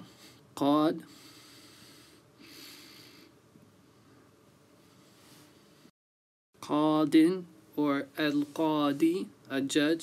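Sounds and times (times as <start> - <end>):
man breathing in through nose: 1.1 - 3.4
man speaking: 6.6 - 10.0.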